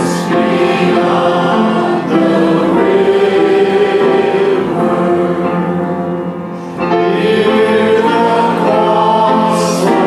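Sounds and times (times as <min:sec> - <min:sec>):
voices singing a worship song: 0:00.0 - 0:10.0.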